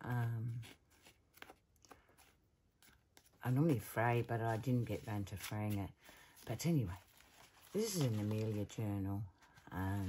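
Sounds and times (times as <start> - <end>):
paper rustles and taps: 0.1 - 5.8.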